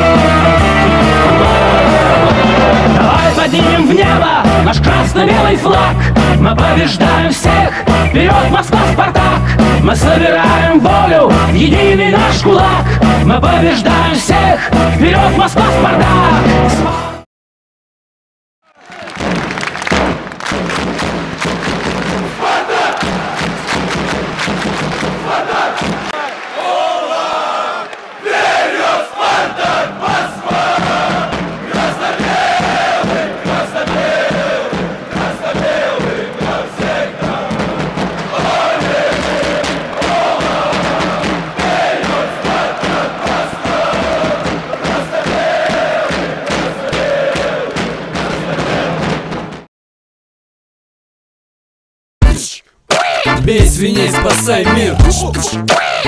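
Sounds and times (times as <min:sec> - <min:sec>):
group chanting or singing: 0:00.0 - 0:17.2, 0:22.2 - 0:23.9, 0:25.0 - 0:49.1, 0:52.3 - 0:56.0
music: 0:00.0 - 0:17.3, 0:19.0 - 0:26.1, 0:29.6 - 0:49.7, 0:52.2 - 0:56.0.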